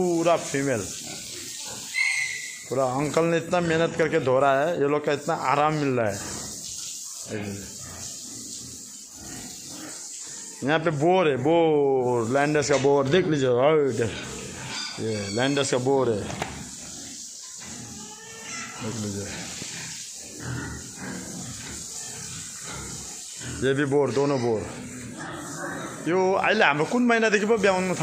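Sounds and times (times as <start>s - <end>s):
hose spraying water: 0.0s - 28.0s
pigs grunting: 0.8s - 4.7s, 5.5s - 28.0s.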